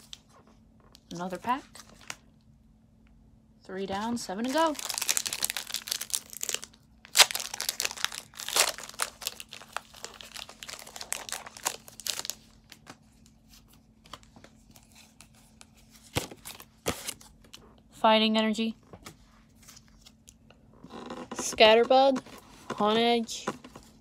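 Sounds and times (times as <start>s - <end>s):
foil wrapper crinkling and tearing: 4.4s - 13.0s.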